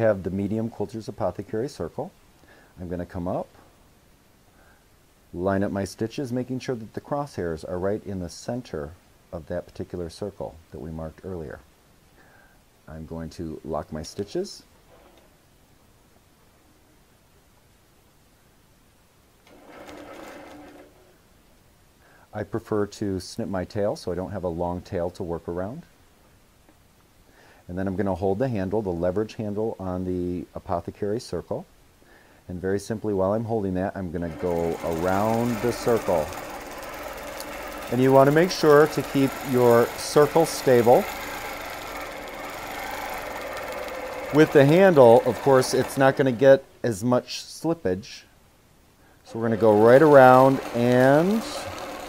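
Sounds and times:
quilting machine stitching: 0:19.4 - 0:21.1, 0:34.2 - 0:46.6, 0:49.3 - 0:52.0.

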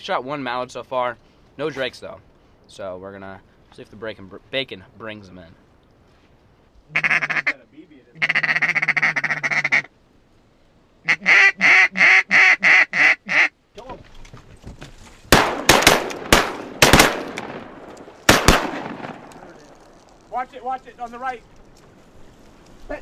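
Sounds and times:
rustling: 0:01.0 - 0:07.5, 0:13.6 - 0:23.0
duck call quacking: 0:06.9 - 0:07.6, 0:08.2 - 0:09.9, 0:11.0 - 0:13.5.

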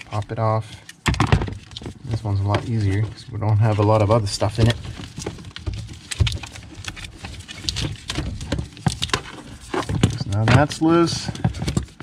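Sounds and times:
wire bundle rustling: 0:00.0 - 0:12.0.

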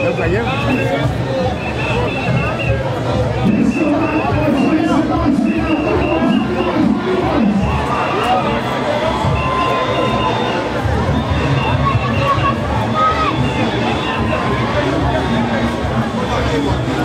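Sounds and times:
parade music: 0:00.0 - 0:15.5
crowd voices and shouts: 0:00.0 - 0:17.0.

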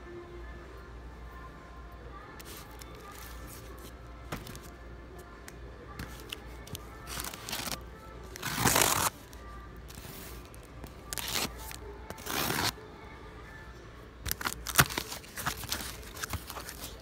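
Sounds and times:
quiet background music: 0:00.0 - 0:17.0.

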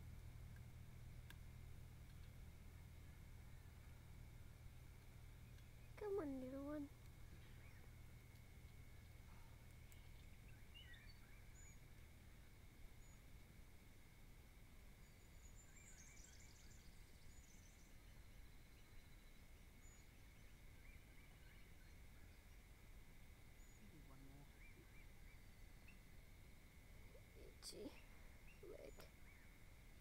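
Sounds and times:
faint bird chirps: 0:05.4 - 0:13.5, 0:14.9 - 0:30.0.

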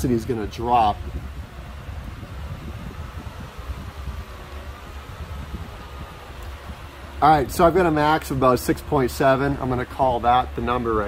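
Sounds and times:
exhaust fan running: 0:00.0 - 0:11.0
faint wavering whine: 0:00.0 - 0:11.0.

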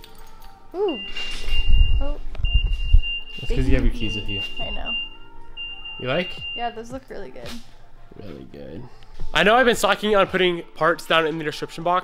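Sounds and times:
high-pitched car warning beep: 0:00.8 - 0:07.0.

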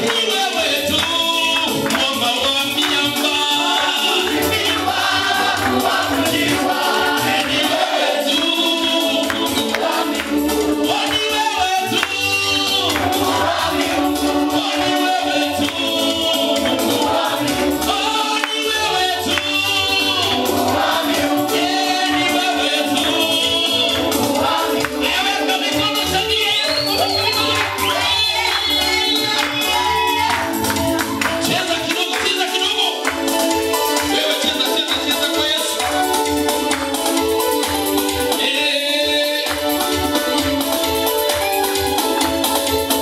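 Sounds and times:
congregation singing: 0:00.0 - 0:43.0
live band with pulsing bass: 0:00.0 - 0:43.0
steady bass beat: 0:18.8 - 0:37.9.

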